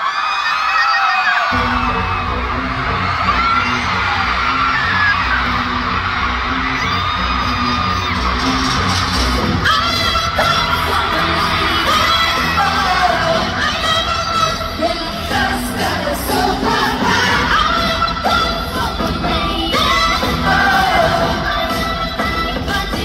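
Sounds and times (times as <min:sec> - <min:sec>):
crowd of fans screaming: 0:00.0 - 0:21.8
pop song with heavy bass beat: 0:01.6 - 0:23.0.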